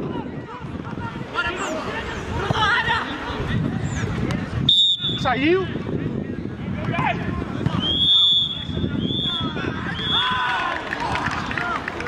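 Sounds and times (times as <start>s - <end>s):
players shouting: 0.0s - 3.5s, 6.8s - 12.0s
high whistle tone: 4.7s - 5.2s, 7.8s - 10.3s.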